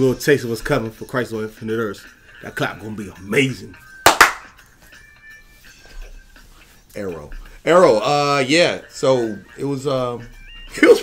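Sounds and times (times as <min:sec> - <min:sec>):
hand claps: 0:04.0 - 0:04.7.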